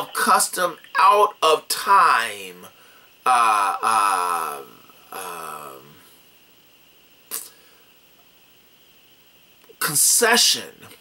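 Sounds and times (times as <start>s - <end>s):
sharp intake of breath: 2.7s - 3.2s.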